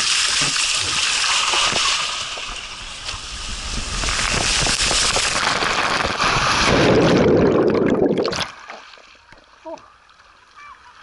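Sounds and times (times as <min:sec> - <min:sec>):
water rushing down slide: 0:00.0 - 0:08.9
heavy splash into pool: 0:00.0 - 0:09.0.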